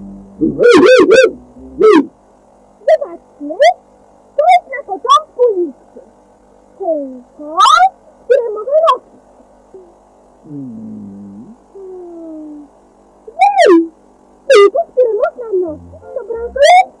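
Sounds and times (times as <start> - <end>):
gliding synthesizer tones: 15.7 - 16.8.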